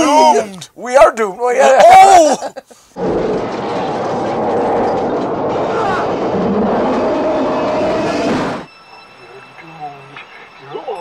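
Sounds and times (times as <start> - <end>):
voices: 0.0 - 2.7, 8.9 - 11.0
train noise: 3.0 - 10.8.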